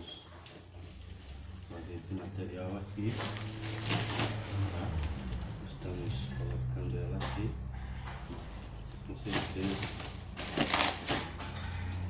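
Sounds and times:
plastic bag rustling and crinkling: 3.0s - 4.9s, 9.1s - 11.4s.

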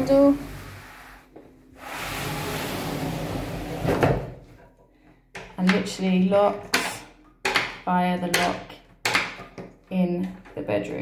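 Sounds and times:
sliding door rolling on track: 1.8s - 4.2s.

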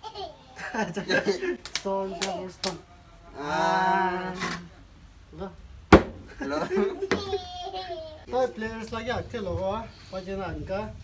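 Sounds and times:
sharp whack: 5.9s - 6.2s.

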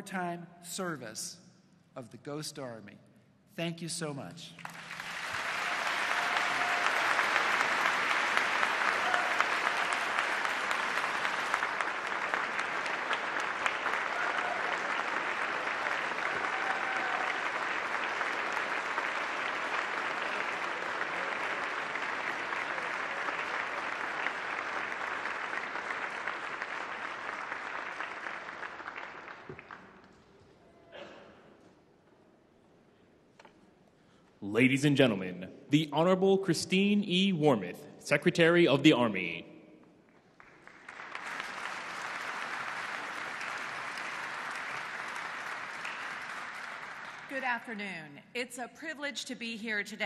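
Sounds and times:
audience applauding: 4.6s - 30.4s, 40.1s - 47.7s.

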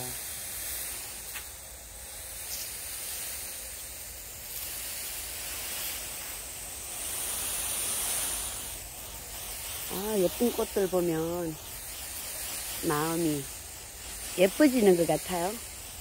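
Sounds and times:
garden hose spraying water: 0.0s - 16.0s.

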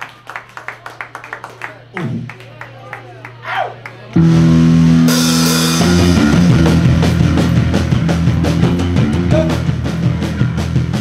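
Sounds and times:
people clapping: 0.0s - 4.2s
amplifier hum: 4.1s - 10.6s
electric guitar chord: 4.2s - 9.9s.

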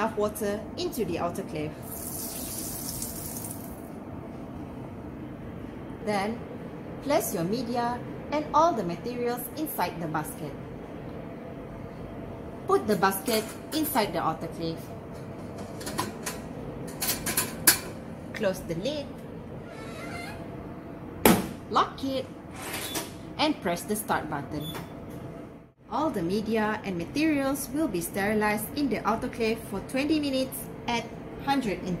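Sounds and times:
water pouring into metal chamber: 1.9s - 3.8s.

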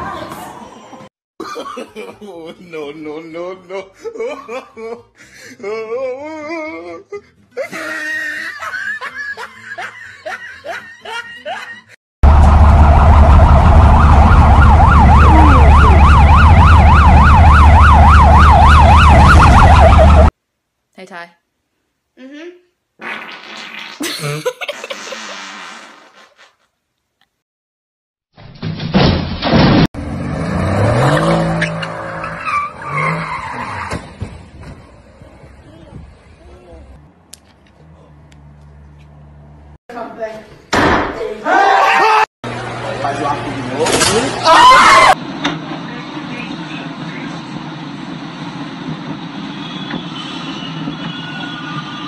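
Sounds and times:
person laughing: 3.6s - 12.0s, 24.0s - 25.5s
loud wailing siren: 12.2s - 20.3s
car engine revving: 30.0s - 33.5s.

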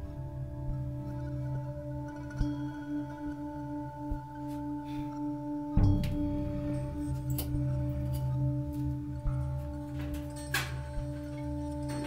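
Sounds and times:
ringing drone chord: 0.0s - 12.0s.

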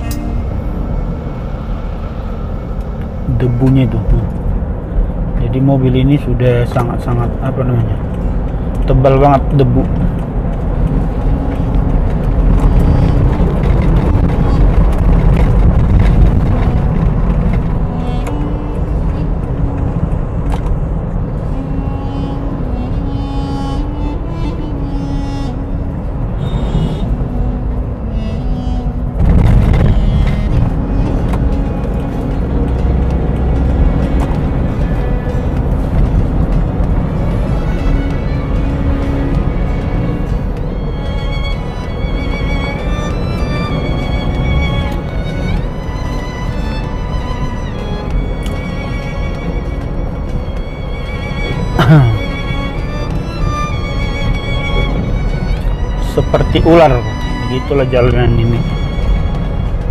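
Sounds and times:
background music slow melody: 0.0s - 59.9s
car driving on road rumble: 0.0s - 59.9s.

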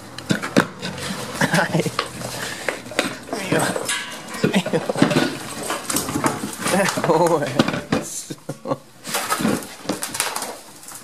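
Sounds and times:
hooves and objects knocking: 0.0s - 11.0s.

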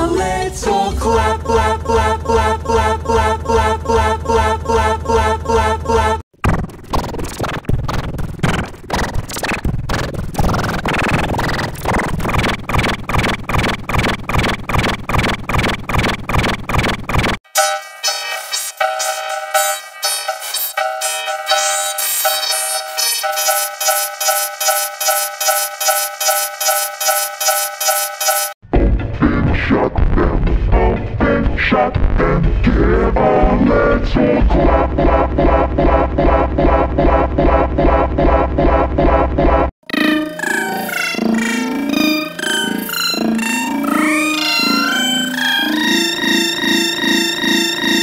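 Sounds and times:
distorted electronic children's song: 0.0s - 48.0s
pulsing beat: 6.4s - 28.6s, 34.5s - 48.0s.

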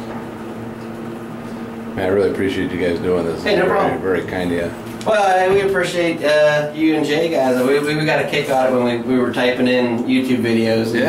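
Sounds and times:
elevator electrical hum: 0.0s - 11.0s.

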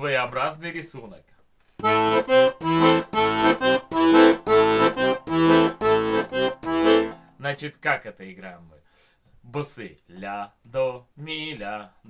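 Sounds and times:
button accordion accompaniment: 1.8s - 7.3s.

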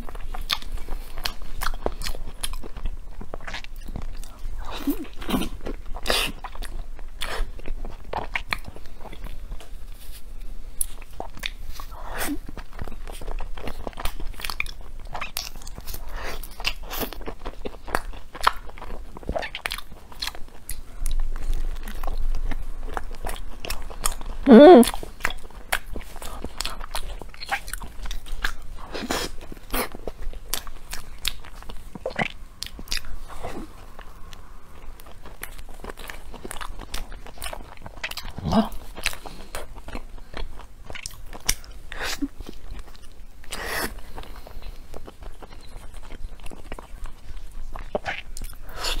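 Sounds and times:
chewing and biting mochi: 0.0s - 49.0s.

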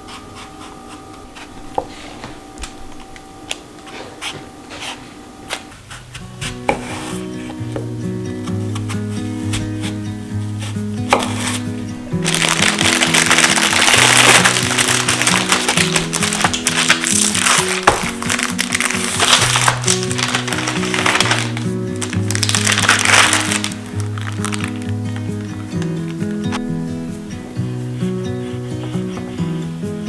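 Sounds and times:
background music with held notes: 1.3s - 30.0s
paper crinkling and rustling: 10.6s - 26.7s.

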